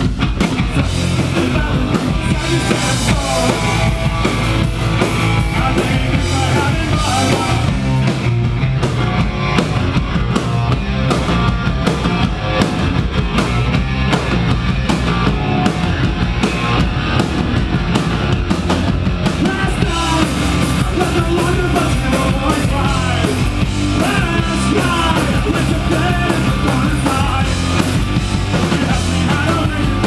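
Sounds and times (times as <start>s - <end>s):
punk rock band playing: 0.0s - 30.0s.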